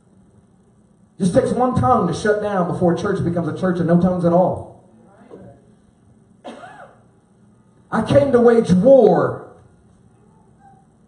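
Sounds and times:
man speaking: 0:01.2 - 0:04.8, 0:07.9 - 0:09.5.

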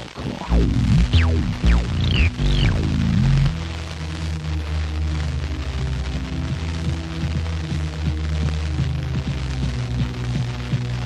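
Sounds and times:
steady low hum: 0:00.0 - 0:03.6
faint low music: 0:00.0 - 0:11.0
radio hiss: 0:00.0 - 0:11.0.

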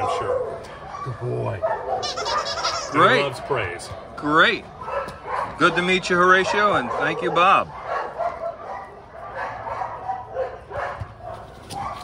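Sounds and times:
dogs barking: 0:00.0 - 0:12.0.

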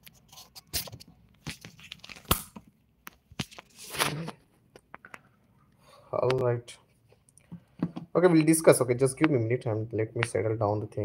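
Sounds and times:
phone handling knocks and scrapes: 0:07.5 - 0:08.1.

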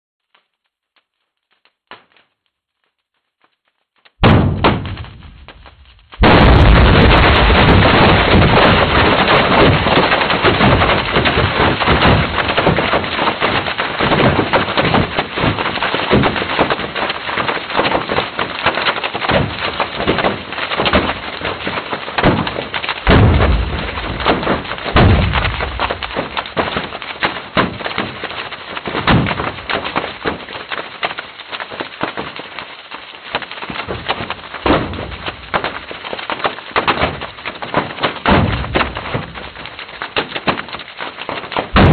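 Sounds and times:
dense crackle of popping: 0:00.2 - 0:41.9
low rumbling bursts: 0:04.2 - 0:09.0, 0:23.0 - 0:26.7
sudden loud earthquake rumble: 0:04.2 - 0:12.4, 0:23.0 - 0:27.0.

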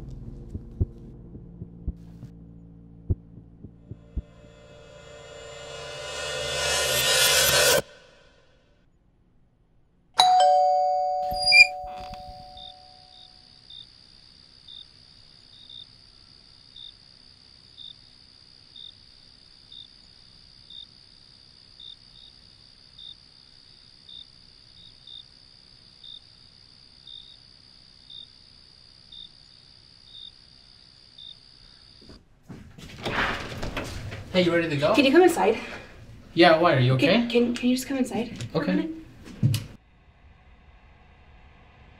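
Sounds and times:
doorbell chime: 0:10.2 - 0:13.2
crickets trilling: 0:12.6 - 0:32.0.

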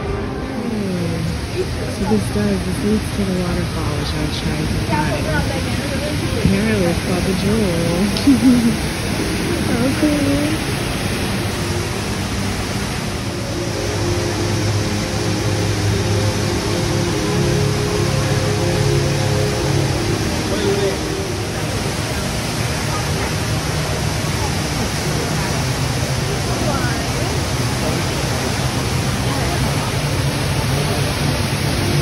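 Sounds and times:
voices of onlookers: 0:00.0 - 0:10.9
indoor waterfall pouring: 0:00.0 - 0:32.0.

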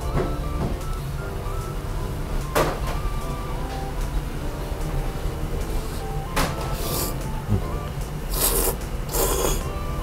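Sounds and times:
background music: 0:00.0 - 0:10.0
noodles being slurped: 0:08.3 - 0:09.6.

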